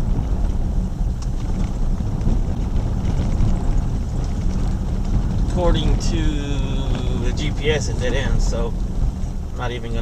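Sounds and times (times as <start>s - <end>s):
low rumble of engine and tyres: 0.0s - 10.0s.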